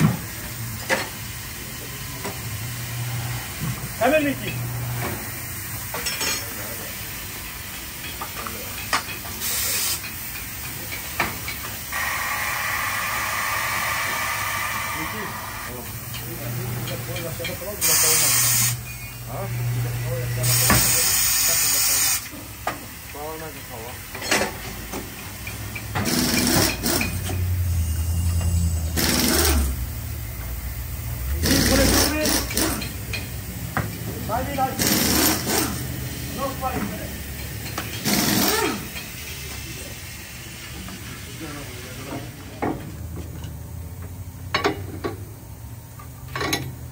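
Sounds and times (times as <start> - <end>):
compressed air hissing: 9.3 - 19.5, 20.4 - 22.4.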